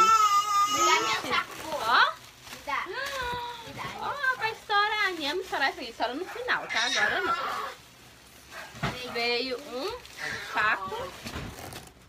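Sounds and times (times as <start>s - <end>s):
plastic packaging rustling: 0.0s - 12.0s.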